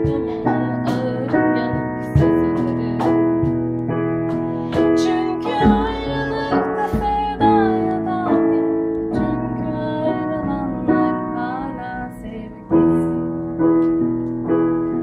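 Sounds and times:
woman singing: 0:00.0 - 0:03.5, 0:04.6 - 0:13.3
piano chords: 0:00.0 - 0:15.0.

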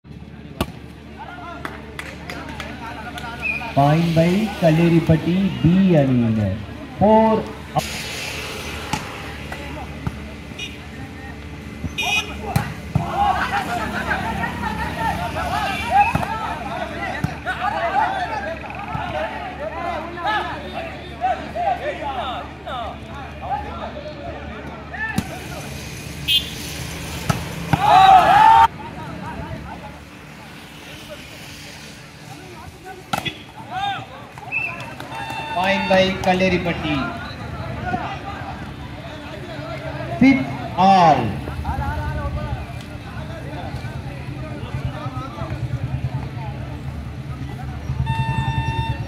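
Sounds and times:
murmur of spectators' voices: 0:00.1 - 0:07.8, 0:08.6 - 0:26.4, 0:27.1 - 0:49.0
people shouting: 0:12.0 - 0:23.9, 0:27.6 - 0:28.7, 0:33.1 - 0:36.0.

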